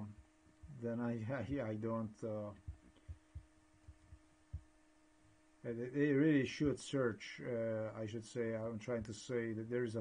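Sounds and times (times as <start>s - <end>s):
soft low thumps: 0.0s - 1.6s, 2.4s - 4.8s
man speaking: 0.0s - 2.7s, 5.6s - 10.0s
steady low hum: 0.0s - 10.0s.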